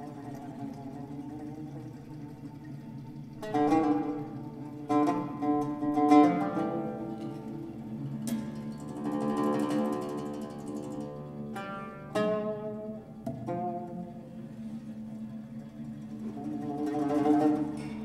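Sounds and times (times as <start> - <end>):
plucked lute playing: 0.0 - 18.0.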